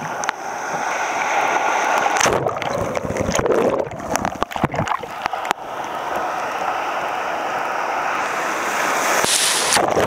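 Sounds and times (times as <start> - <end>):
surf washing in shallows: 0.0 - 10.0
wave breaking: 0.0 - 10.0.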